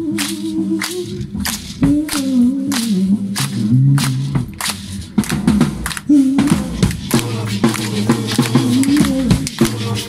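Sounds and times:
men singing a cappella: 0.0s - 4.1s, 6.1s - 10.0s
maraca shakes: 0.0s - 10.0s
hand claps: 0.1s - 10.0s.

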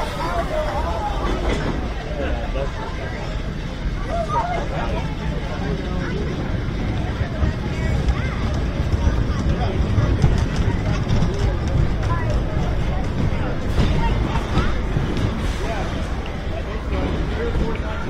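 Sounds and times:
people chattering: 0.0s - 18.0s
roller coaster wheels rumbling: 0.0s - 18.0s.

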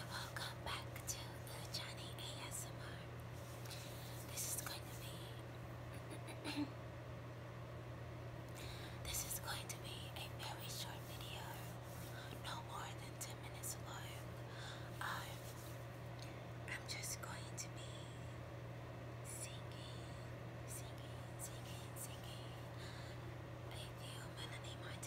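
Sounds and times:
woman whispering: 0.0s - 3.1s, 4.1s - 5.5s, 9.0s - 15.7s, 16.6s - 18.3s, 19.2s - 22.8s, 23.7s - 25.0s
steady low hum: 0.0s - 25.0s.

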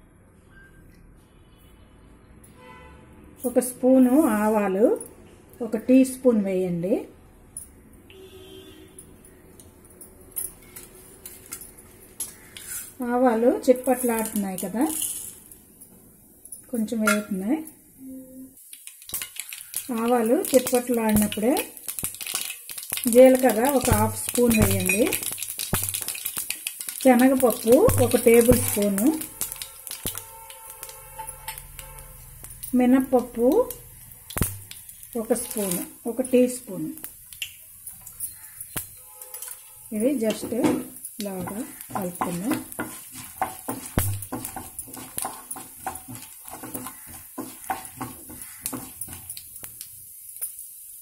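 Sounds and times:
seeds popping in hot oil: 10.4s - 15.6s, 18.6s - 51.0s.

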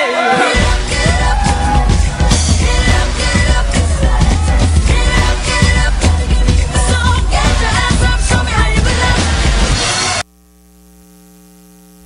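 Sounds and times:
pop dance music: 0.0s - 10.2s
electrical mains hum: 10.2s - 12.0s.

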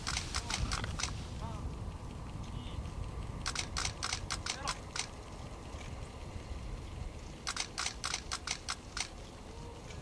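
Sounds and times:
camera shutter clicks: 0.0s - 1.2s, 3.4s - 5.1s, 7.4s - 9.2s
low steady background noise: 0.0s - 10.0s.

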